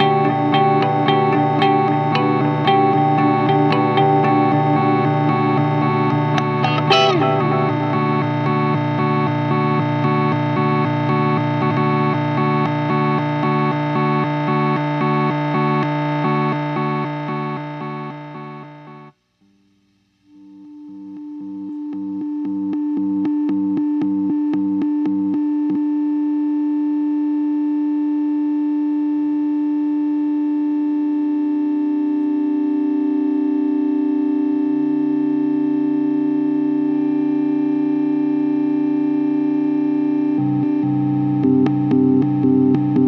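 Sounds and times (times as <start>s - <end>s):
rhythmic stutter in low notes: 0.0s - 12.6s
electric guitar synth-like drone: 0.0s - 19.1s, 22.2s - 43.0s.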